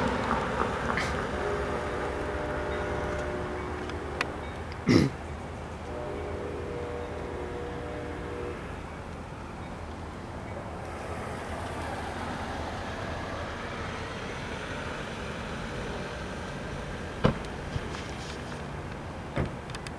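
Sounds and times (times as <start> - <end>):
locomotive horn chord: 0.0 - 4.8, 5.7 - 17.8
moving train rumble: 0.0 - 19.9.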